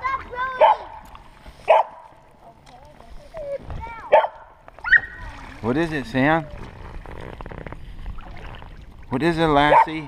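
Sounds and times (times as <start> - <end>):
dog barking: 0.5 - 0.9, 1.7 - 2.0, 4.1 - 5.2, 9.7 - 10.0.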